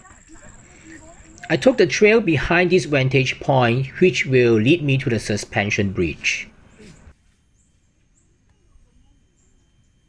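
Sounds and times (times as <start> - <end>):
faint forest ambience: 0.0 - 10.0.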